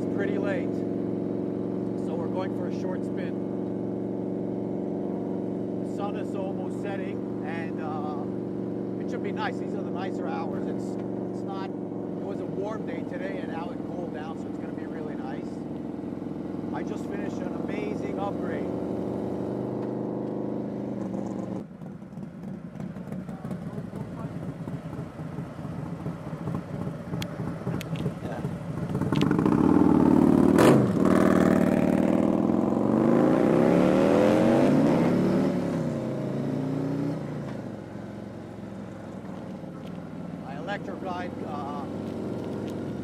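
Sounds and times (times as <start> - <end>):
motorcycle engine accelerating: 0.0 - 43.0.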